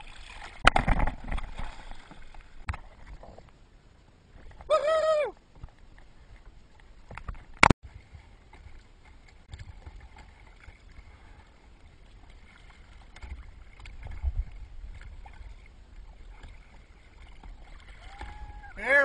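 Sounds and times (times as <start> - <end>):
small splashes: 0.0 - 3.2, 7.8 - 18.8
water lapping against kayak hull: 0.0 - 3.6, 4.2 - 19.0.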